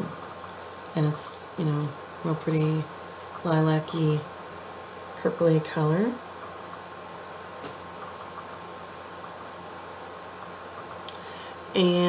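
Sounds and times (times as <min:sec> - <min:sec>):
low hiss of room tone: 0:00.0 - 0:12.0.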